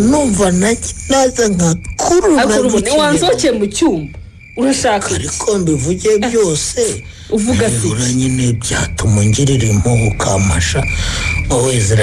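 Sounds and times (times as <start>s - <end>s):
faint steady high tone: 0.0s - 12.0s
person speaking: 2.0s - 10.7s.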